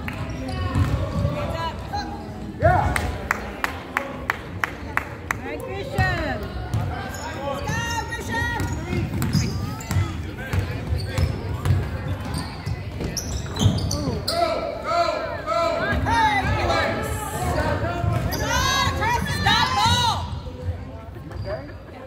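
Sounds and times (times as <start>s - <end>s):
sneakers squeaking: 0.2s - 1.3s, 6.7s - 14.6s, 18.0s - 22.0s.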